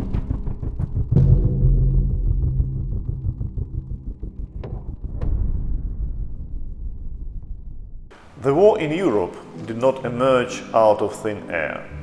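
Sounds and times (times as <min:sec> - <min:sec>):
low rumbling drone: 0:00.0 - 0:08.2.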